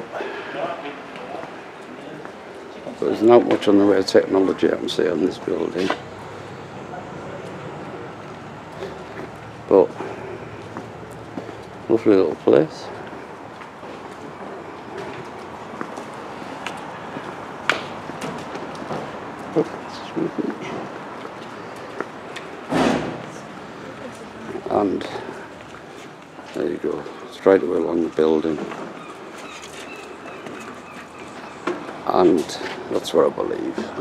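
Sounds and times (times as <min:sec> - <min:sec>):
street background noise: 0:00.0 - 0:34.0.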